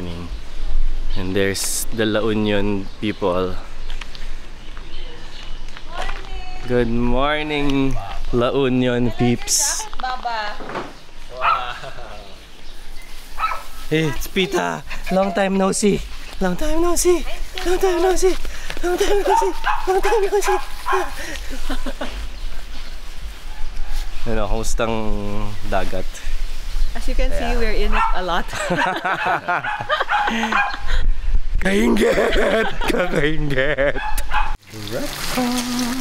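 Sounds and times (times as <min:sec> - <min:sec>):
small dog barking: 0:11.4 - 0:11.8, 0:13.4 - 0:13.8, 0:19.2 - 0:21.2, 0:27.8 - 0:28.3, 0:29.1 - 0:30.9, 0:34.0 - 0:34.6
man and woman laughing: 0:11.6 - 0:12.4, 0:14.4 - 0:15.6, 0:17.6 - 0:22.3, 0:28.5 - 0:31.1, 0:31.7 - 0:34.4.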